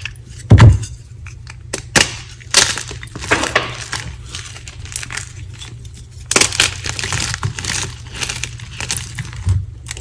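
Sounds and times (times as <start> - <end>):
chalk block cracking and crumbling: 0.0 - 10.0.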